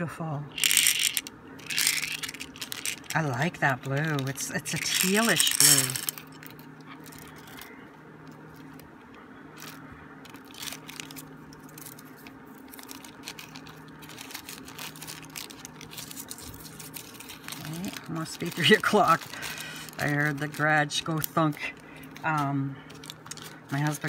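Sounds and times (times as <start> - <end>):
steady low hum: 0.0 - 24.0
plastic bags rustling: 0.6 - 7.7, 9.5 - 24.0.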